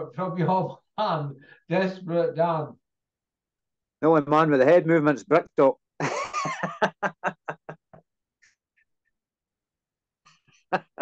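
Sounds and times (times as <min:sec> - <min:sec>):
man laughing hard: 0:06.0 - 0:08.0, 0:10.7 - 0:11.0.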